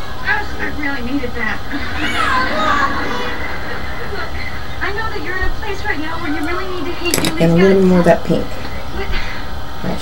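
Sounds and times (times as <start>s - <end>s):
high-pitched voices from television: 0.0s - 9.4s
steady low hum: 0.0s - 10.0s.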